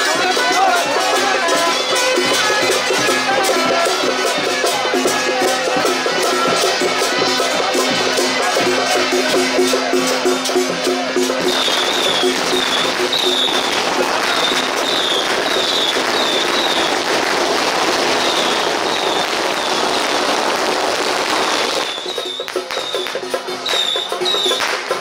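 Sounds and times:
firecrackers crackling: 0.0 - 25.0.

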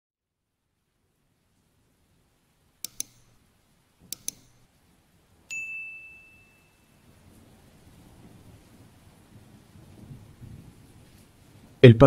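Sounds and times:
quick double clicks: 2.8 - 3.4, 4.1 - 4.7
bright bell ding: 5.5 - 7.0.

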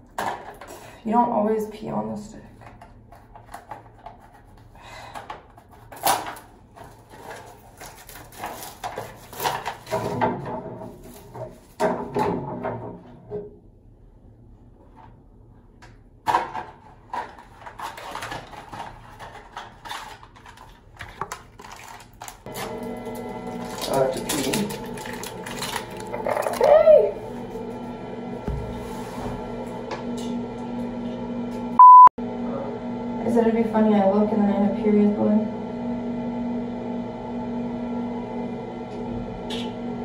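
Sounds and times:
packaging rustling and crinkling: 5.6 - 10.0, 16.8 - 26.7.

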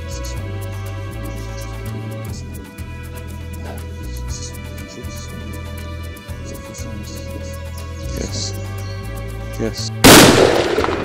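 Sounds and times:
rifle shot: 10.0 - 11.0.

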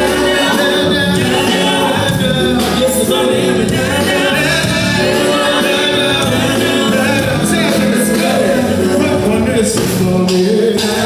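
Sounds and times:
backing singers: 0.0 - 11.0
instrumental accompaniment: 0.0 - 11.0
man singing lead: 0.0 - 11.0.

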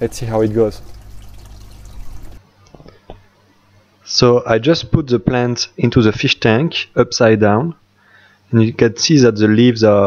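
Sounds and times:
water pouring into fish tank: 0.0 - 2.4.

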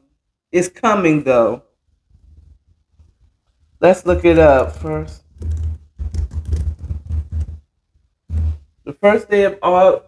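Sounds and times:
typing on a keyboard: 4.4 - 7.6.

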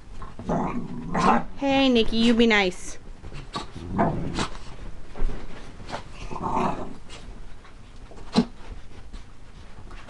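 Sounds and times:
dogs scuffling and bumping: 0.0 - 10.0
dog growling: 0.2 - 1.5, 3.5 - 4.6, 6.2 - 7.0.

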